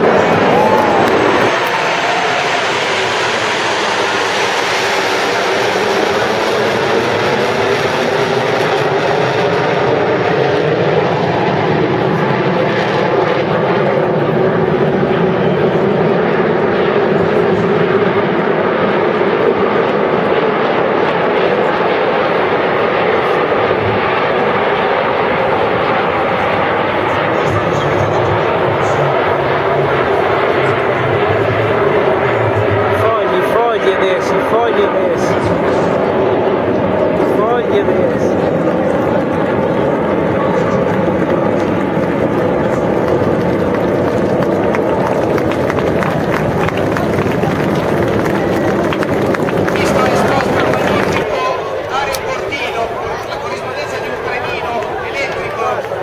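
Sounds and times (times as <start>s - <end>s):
jet engines flying past: 0.0s - 56.0s.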